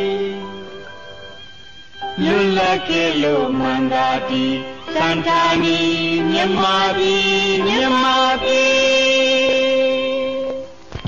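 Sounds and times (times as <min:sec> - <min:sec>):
group of voices singing: 0:02.2 - 0:10.6.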